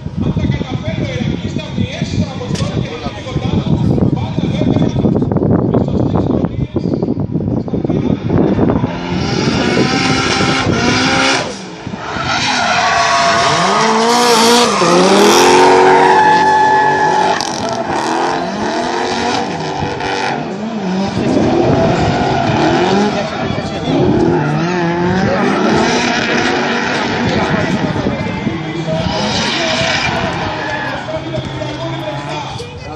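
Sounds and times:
car engines revving: 0:07.7 - 0:32.9
tyres squealing and skidding: 0:08.9 - 0:32.9.

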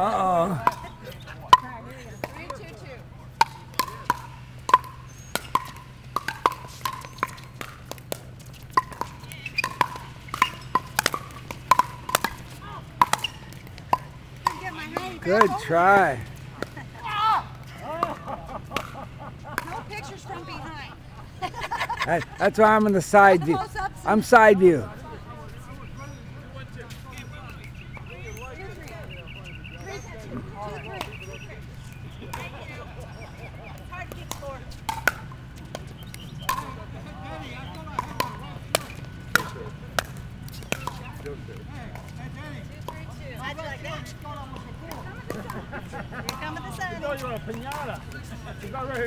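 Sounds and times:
people talking: 0:00.0 - 0:04.3, 0:14.5 - 0:16.3, 0:17.0 - 0:34.8, 0:36.4 - 0:40.0, 0:40.6 - 0:49.0
paddles striking plastic ball: 0:03.3 - 0:16.8, 0:37.8 - 0:42.2.

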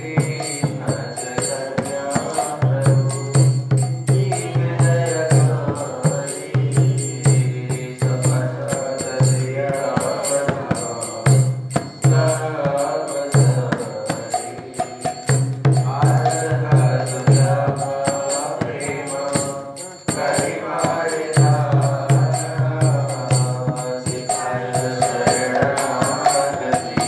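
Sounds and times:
drum beat: 0:00.0 - 0:27.0
jingling percussion: 0:00.0 - 0:27.0
man chanting a devotional song: 0:00.0 - 0:27.0
small hand cymbals: 0:00.0 - 0:27.0.

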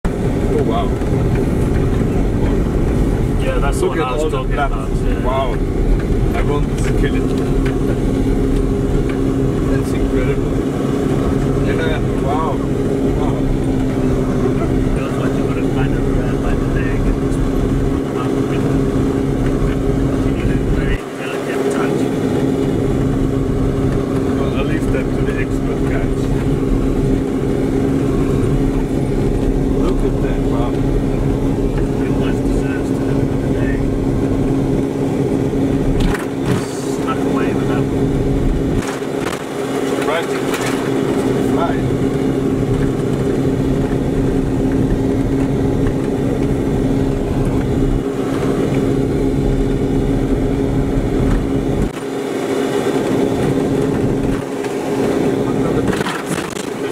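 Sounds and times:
off-road vehicle engine droning: 0:00.0 - 0:56.9.

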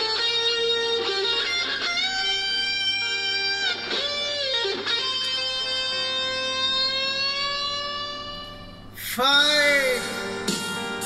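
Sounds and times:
long-held electric guitar note: 0:00.0 - 0:09.0.

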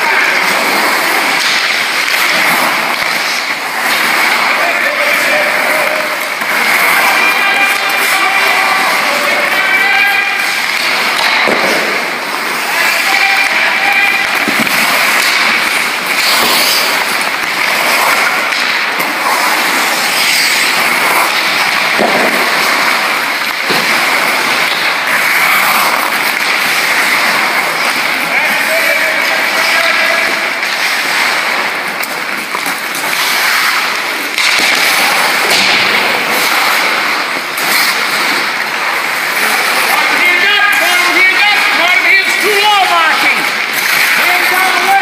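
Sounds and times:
indistinct voices: 0:00.0 - 0:45.0
rink ambience: 0:00.0 - 0:45.0
skate blades scraping ice: 0:00.0 - 0:45.0
stick hitting puck: 0:00.0 - 0:45.0.

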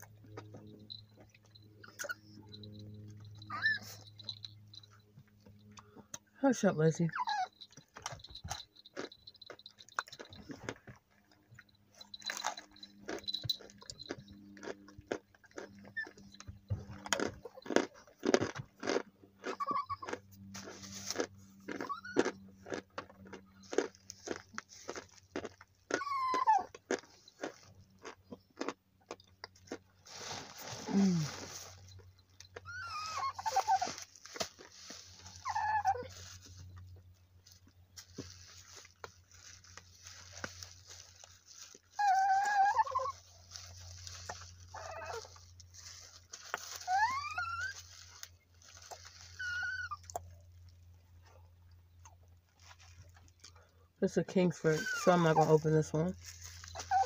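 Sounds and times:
crunchy chewing: 0:00.0 - 0:06.3, 0:07.2 - 0:57.0
small dog whining: 0:01.7 - 0:04.9, 0:07.1 - 0:09.1, 0:15.8 - 0:16.7, 0:19.4 - 0:20.3, 0:21.6 - 0:22.4, 0:25.9 - 0:26.8, 0:30.8 - 0:34.1, 0:35.1 - 0:36.8, 0:41.8 - 0:45.6, 0:46.6 - 0:48.3, 0:48.9 - 0:50.3, 0:54.7 - 0:55.6, 0:56.6 - 0:57.0.

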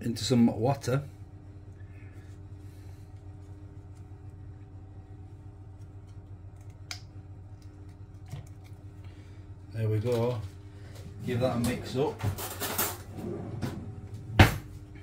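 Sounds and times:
low kitchen hum: 0:00.0 - 0:15.0.

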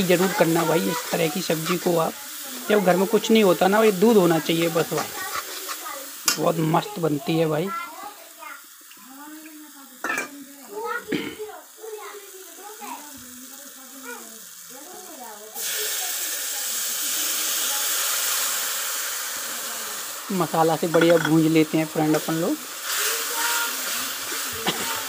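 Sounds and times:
faint voices: 0:00.0 - 0:21.3, 0:22.2 - 0:25.0
paste sizzling in hot oil: 0:00.0 - 0:25.0.

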